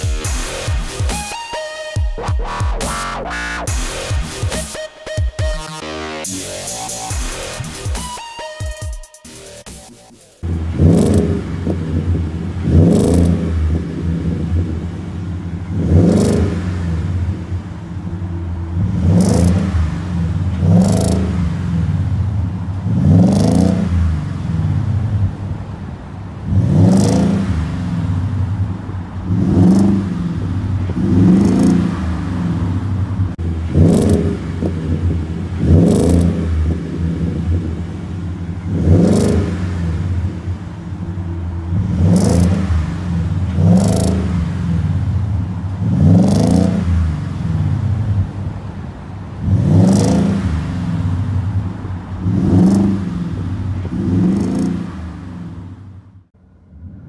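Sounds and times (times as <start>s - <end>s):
truck engine revving: 0.0s - 57.0s.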